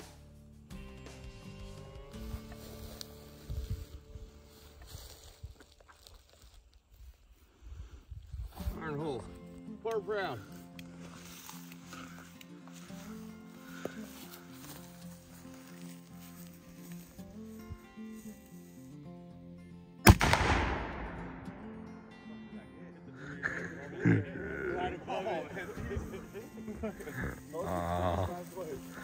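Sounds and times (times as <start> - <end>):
background music: 0.0 - 5.4, 8.5 - 29.0
small cannon blast: 20.1 - 21.6
people laughing: 22.6 - 29.0.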